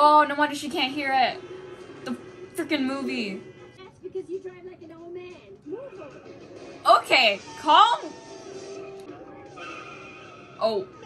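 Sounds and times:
light music: 0.0s - 11.0s.

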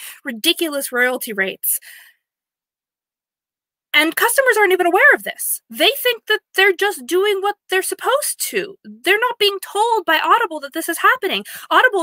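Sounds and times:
woman speaking: 0.0s - 1.9s, 4.0s - 12.0s.

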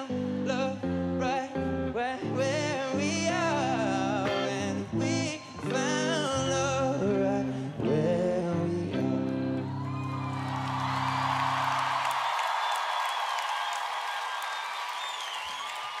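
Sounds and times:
crowd cheering and applauding: 9.6s - 16.0s.

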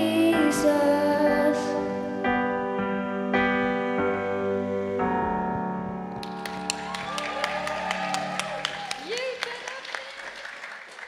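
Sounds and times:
audience applause: 6.1s - 11.0s.

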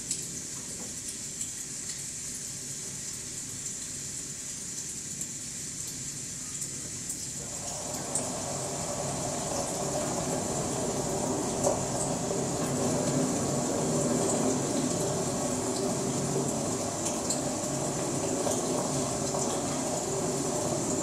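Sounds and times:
steady rushing noise with hiss: 7.3s - 21.0s.

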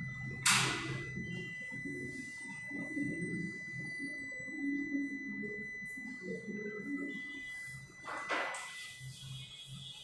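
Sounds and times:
high-pitched electronic tone: 0.0s - 10.0s.

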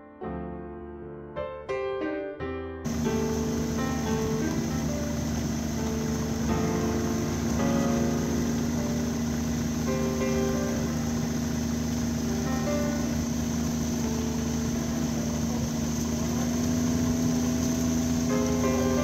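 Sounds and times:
snowmobile engine humming: 2.9s - 19.0s.

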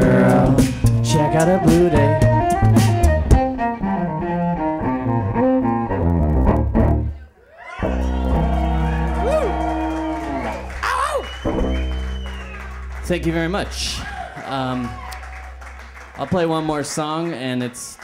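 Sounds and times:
beatboxed percussion: 0.0s - 3.4s.

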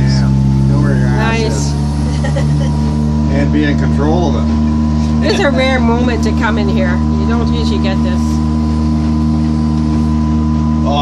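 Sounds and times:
outboard motor droning: 0.0s - 11.0s.

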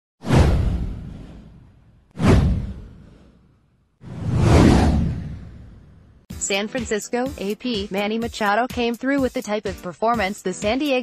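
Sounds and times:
whoosh with deep boom: 0.2s - 6.3s.

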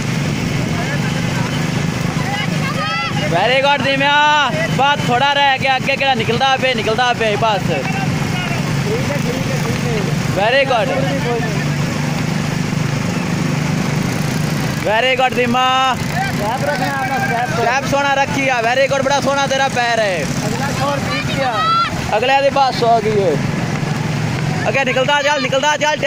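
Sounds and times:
small motorcycle engine idling: 0.0s - 25.8s
man shouting: 2.3s - 8.7s, 15.2s - 19.4s, 20.7s - 22.8s, 24.6s - 26.0s.

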